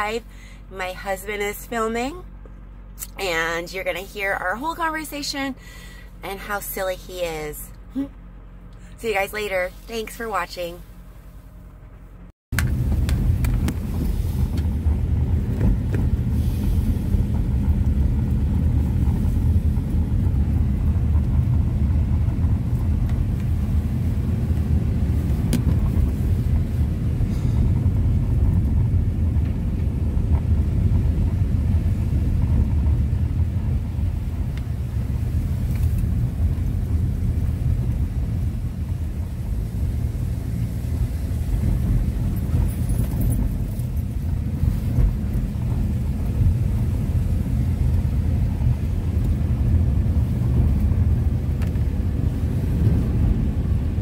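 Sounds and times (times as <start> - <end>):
tyres rumbling on gravel road: 0.0 - 54.0.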